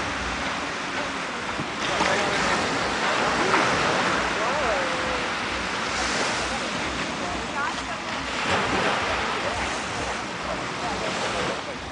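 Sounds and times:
sea water lapping against boat: 0:00.0 - 0:11.9.

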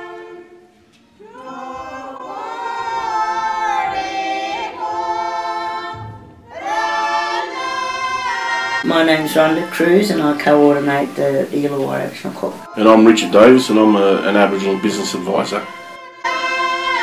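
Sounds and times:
voices singing held gliding notes: 0:00.0 - 0:17.0.

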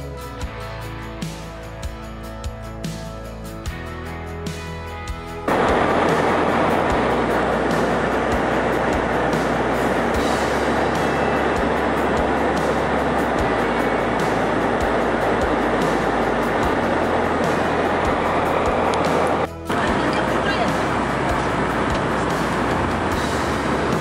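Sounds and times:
background music with beat: 0:00.0 - 0:24.0
airliner cabin drone: 0:05.5 - 0:24.0.

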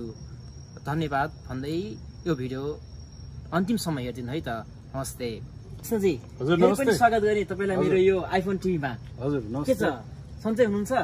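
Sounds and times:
crickets trilling: 0:00.0 - 0:11.0
man speaking: 0:03.5 - 0:11.0.

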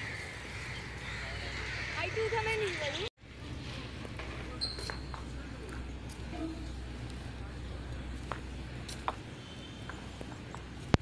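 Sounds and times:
faint distant voices: 0:01.0 - 0:10.9.

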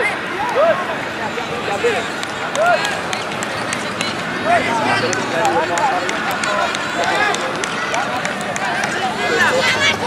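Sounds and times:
outdoor background noise: 0:00.0 - 0:10.0
people shouting and calling: 0:00.0 - 0:10.0.

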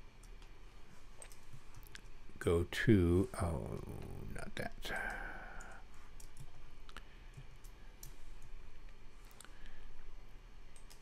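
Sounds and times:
faint steady tone: 0:00.0 - 0:11.0
computer mouse clicks: 0:01.2 - 0:02.1, 0:05.0 - 0:08.6, 0:10.7 - 0:11.0.

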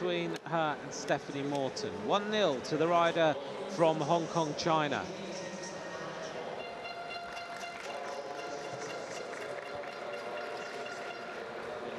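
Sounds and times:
indoor velodrome ambience: 0:00.0 - 0:11.9.

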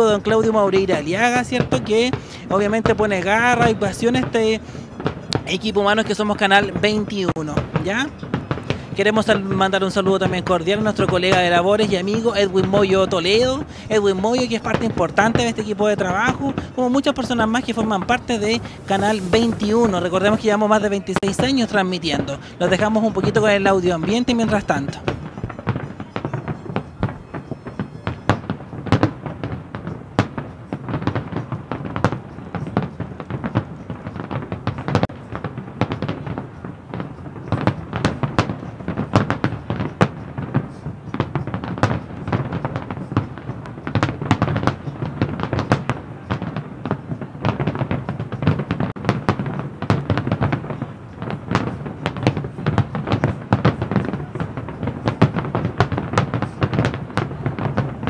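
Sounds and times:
fireworks bangs and crackles: 0:00.0 - 0:58.0.

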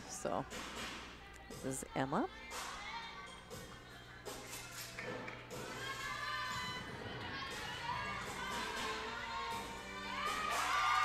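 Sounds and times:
music over speakers: 0:00.0 - 0:11.0.

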